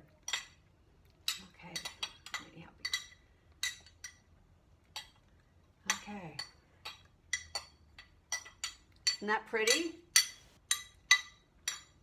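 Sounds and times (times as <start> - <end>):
metal utensils clinking on glass bowl: 0.2 - 0.6, 1.2 - 4.3, 5.9 - 12.0.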